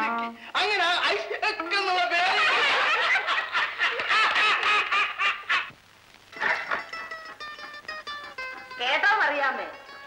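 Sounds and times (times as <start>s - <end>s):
people laughing heartily: 2.2s - 5.7s.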